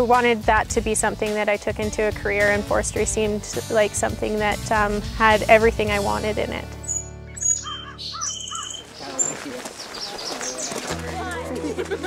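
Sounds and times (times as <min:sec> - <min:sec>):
soft background music: 0:00.0 - 0:09.3, 0:10.5 - 0:12.0
bird chirps: 0:06.8 - 0:10.9.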